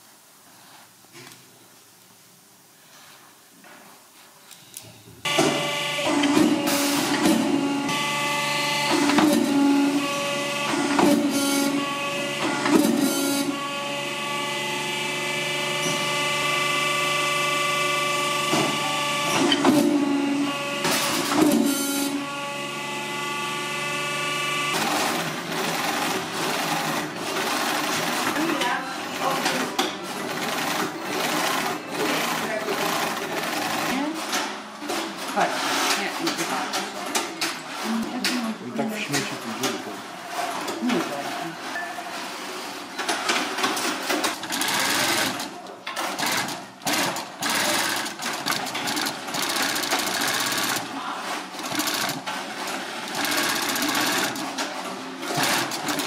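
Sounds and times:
cutting press machine hum: 5.3s - 35.3s, 42.2s - 56.0s.

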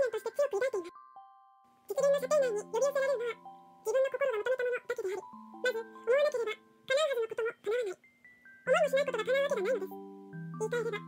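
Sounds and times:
woman reading aloud: 0.0s - 0.9s, 1.9s - 8.0s, 8.7s - 10.0s, 10.6s - 11.0s
music-box melody: 0.0s - 11.0s.

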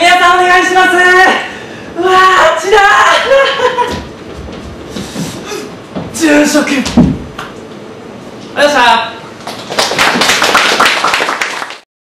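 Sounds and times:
audience clapping: 9.4s - 11.9s.

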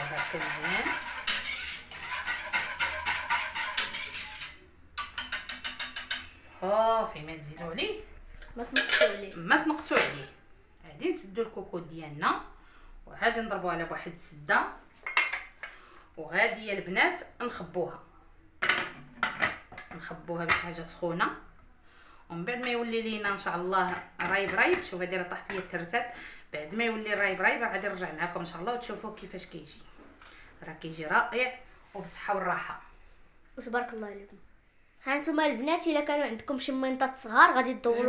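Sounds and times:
whisk clattering in metal pot: 0.0s - 6.4s
metal lid clanking on pot: 8.8s - 9.2s.

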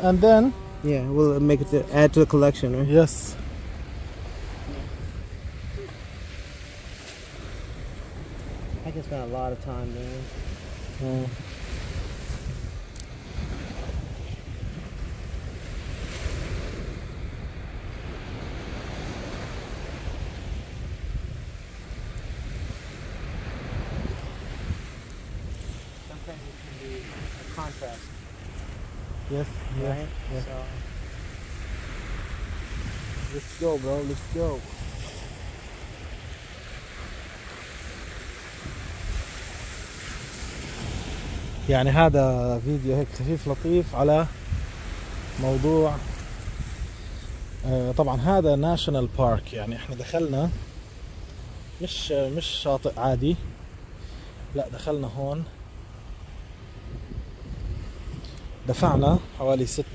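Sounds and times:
surf breaking on beach: 0.0s - 59.9s
wind rumbling on microphone: 0.0s - 59.9s.

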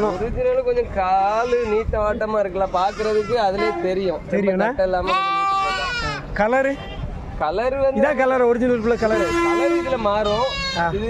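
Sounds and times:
goat bleating: 2.6s - 3.9s, 5.0s - 6.3s, 8.6s - 11.0s.

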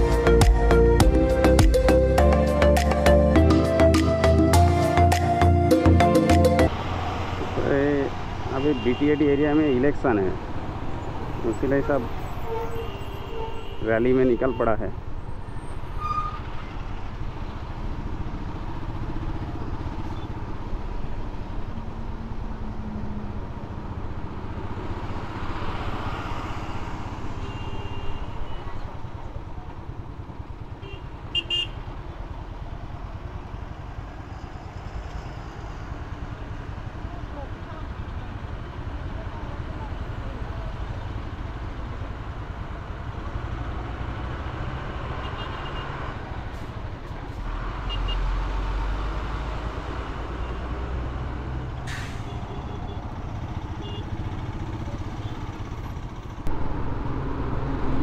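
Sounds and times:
traffic of motorbikes and trucks: 0.0s - 58.0s
heavy low rumble: 56.5s - 58.0s.

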